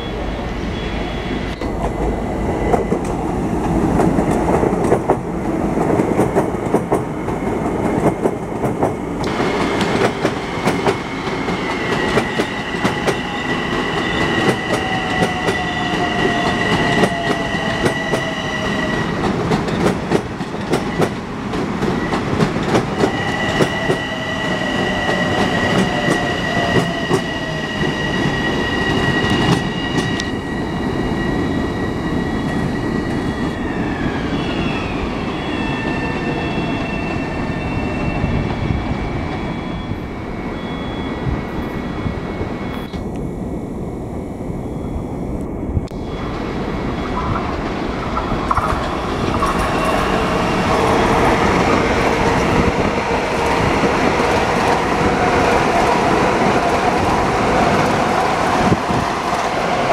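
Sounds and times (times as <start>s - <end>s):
rumbling track noise: 0.1s - 40.4s, 41.1s - 59.9s
train wheels clacking on track: 1.6s - 30.4s, 47.0s - 59.9s.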